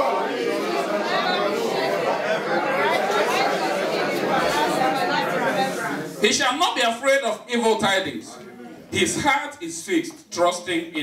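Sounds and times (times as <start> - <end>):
many voices reading aloud: 0.0 - 11.0.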